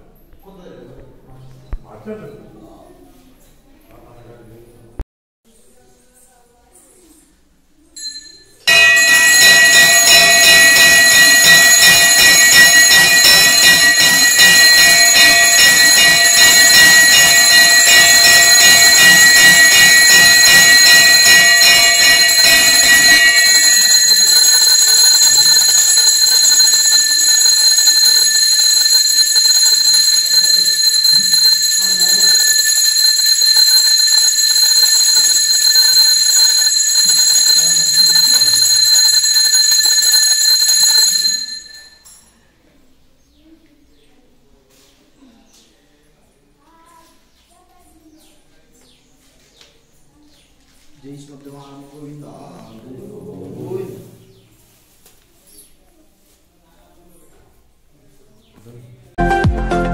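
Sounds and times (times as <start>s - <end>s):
temple bells clanging: 8.0s - 42.2s.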